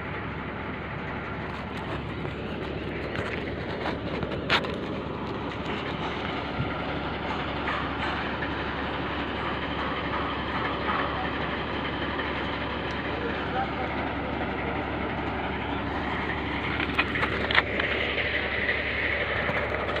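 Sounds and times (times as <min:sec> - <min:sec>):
heavy machinery drone: 0:00.0 - 0:20.0.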